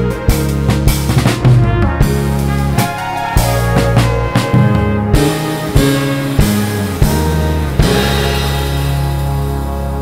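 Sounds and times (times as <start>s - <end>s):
electric bass: 0.0s - 10.0s
live band playing: 0.0s - 10.0s
trumpet and trombone: 0.0s - 10.0s
drum kit hits: 0.6s - 10.0s
sustained synthesizer chords: 5.1s - 10.0s.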